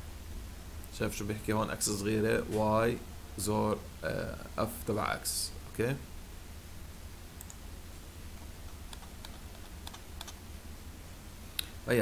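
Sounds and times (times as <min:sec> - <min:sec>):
low steady hum: 0:00.0 - 0:12.0
computer mouse clicks: 0:07.4 - 0:07.6, 0:08.7 - 0:10.4.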